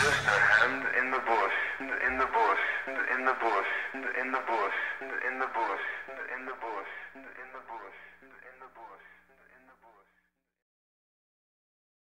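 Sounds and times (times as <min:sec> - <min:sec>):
heavy metal music: 0:00.0 - 0:04.5.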